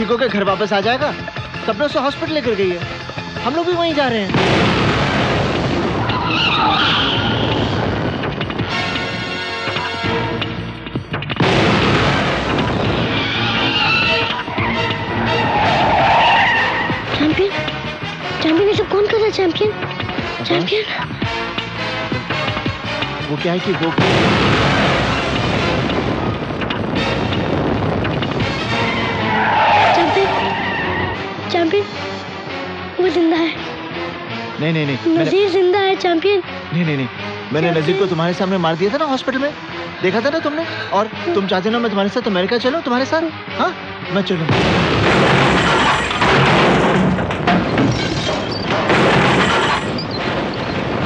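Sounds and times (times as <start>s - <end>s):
film soundtrack music: 0.0s - 51.0s
loud steady rumbling: 4.3s - 9.2s, 24.0s - 29.4s
car tyres squealing: 5.9s - 8.2s, 13.0s - 17.2s, 28.4s - 31.5s, 47.6s - 51.0s.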